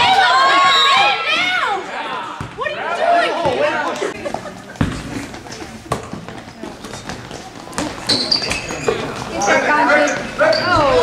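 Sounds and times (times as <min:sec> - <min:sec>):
basketball bouncing on gym floor: 0:04.8 - 0:05.1.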